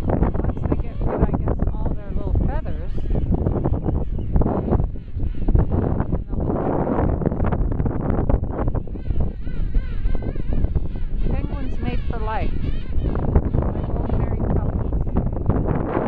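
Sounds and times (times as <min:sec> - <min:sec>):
penguins calling: 0:00.0 - 0:07.3, 0:07.9 - 0:16.0
wind rumbling on microphone: 0:00.0 - 0:16.0.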